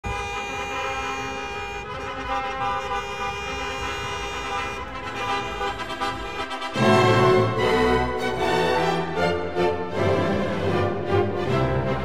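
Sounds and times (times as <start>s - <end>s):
car horns sounding: 0.0s - 7.6s
street traffic rumble: 0.0s - 8.1s.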